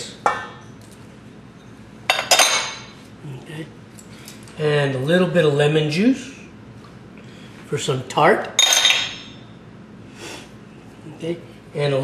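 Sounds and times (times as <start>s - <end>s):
clink against metal bowl: 8.6s - 9.4s.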